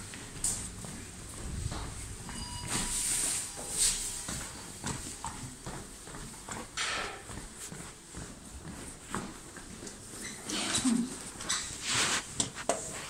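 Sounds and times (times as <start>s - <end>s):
footsteps on hard floor: 0.0s - 13.0s.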